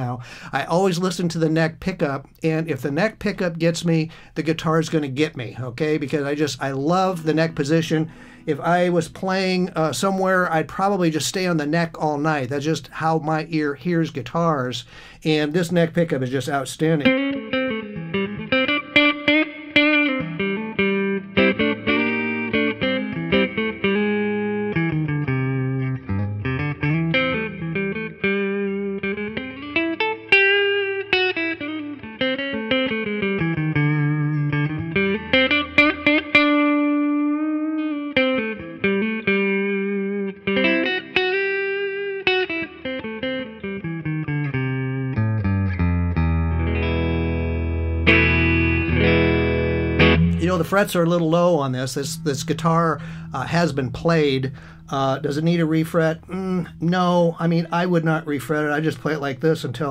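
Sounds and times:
electric guitar chords: 0.0 - 1.5, 2.2 - 11.8, 16.8 - 59.9
electric guitar lead: 0.0 - 1.6, 2.2 - 11.8, 16.5 - 59.9.

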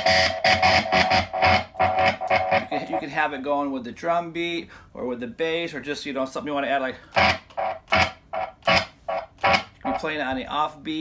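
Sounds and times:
electric guitar chord stabs: 0.0 - 3.0.

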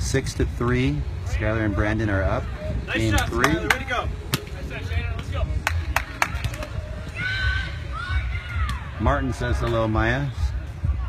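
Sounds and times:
people talking: 0.0 - 6.7
steady low rumble: 0.0 - 11.0.

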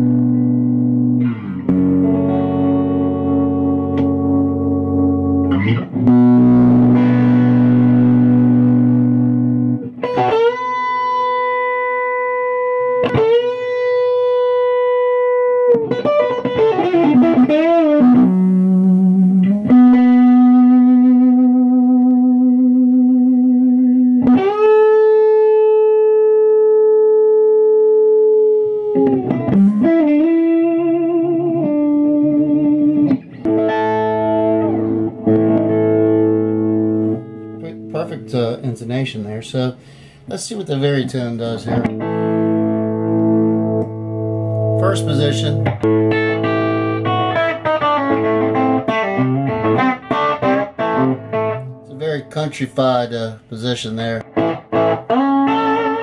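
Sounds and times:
electric guitar sustained notes: 0.0 - 53.4, 54.0 - 56.0.

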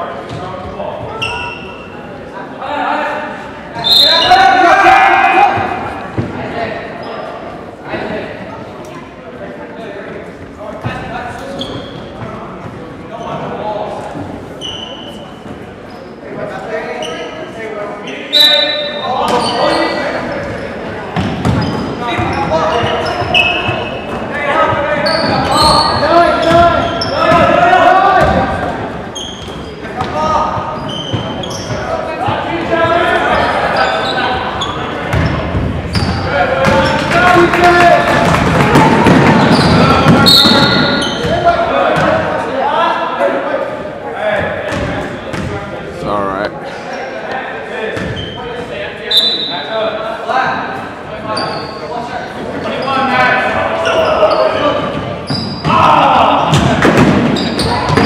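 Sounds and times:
sneaker squeaks: 0.2 - 2.1, 3.7 - 4.6, 6.9 - 7.4, 10.4 - 37.2, 39.1 - 42.2, 44.4 - 45.6, 47.8 - 49.7, 51.2 - 58.0
people shouting in a gym: 2.6 - 6.9, 18.2 - 46.4, 47.6 - 58.0.

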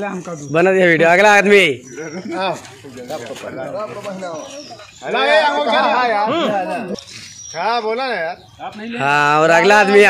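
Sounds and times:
men talking in background: 0.0 - 10.0.

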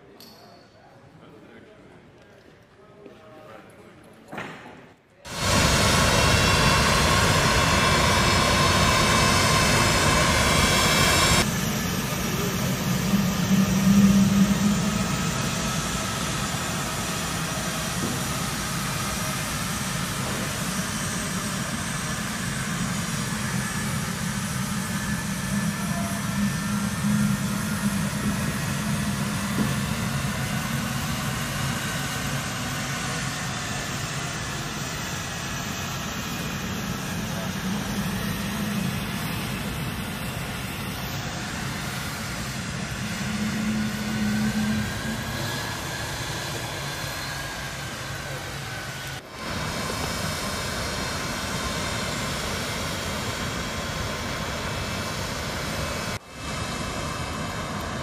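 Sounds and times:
jet engines whining and rumbling: 5.2 - 58.0.

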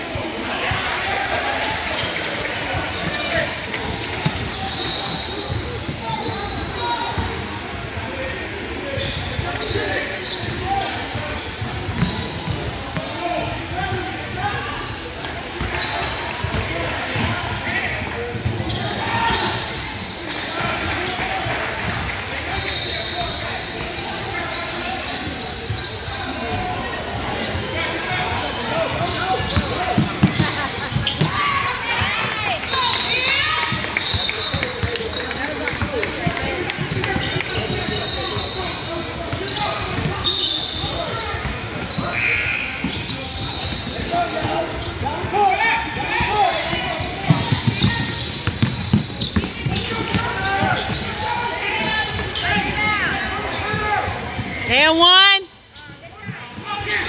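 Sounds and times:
voices chattering: 0.0 - 57.0
sneaker squeaks: 0.5 - 57.0.

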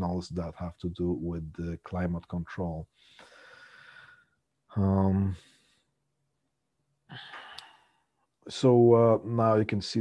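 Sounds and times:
man's soft breath: 2.9 - 4.4.

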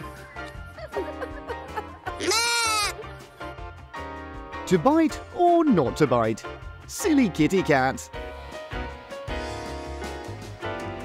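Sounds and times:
goat bleating: 2.2 - 3.0.

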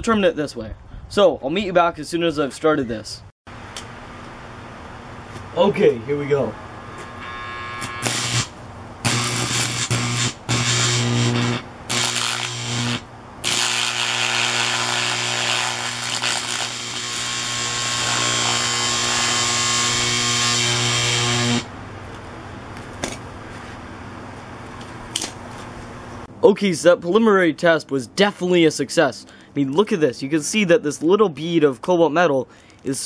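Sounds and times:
electric arc buzzing and crackling: 6.8 - 21.7.

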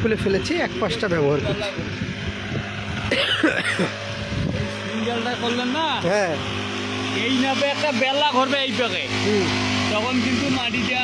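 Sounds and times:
brush cutter running: 0.0 - 11.0
tines churning soil and grass: 3.8 - 11.0.

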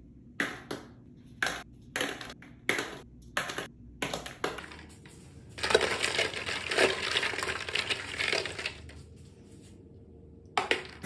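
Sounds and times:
plastic balls clattering into toilet: 5.6 - 9.0, 10.6 - 11.0.

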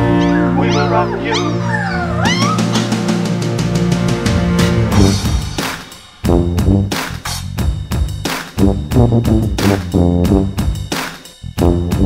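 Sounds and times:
puppy whining: 0.0 - 3.2
loud background music: 0.0 - 12.0.

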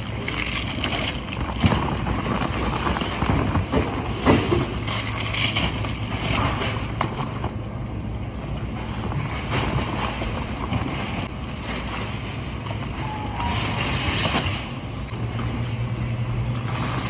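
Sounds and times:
plastic packaging rustling: 0.0 - 6.4
steady low hum: 0.0 - 17.0.

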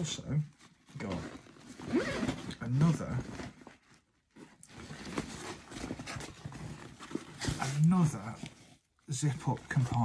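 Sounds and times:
fabric bag rustling: 0.6 - 8.6.

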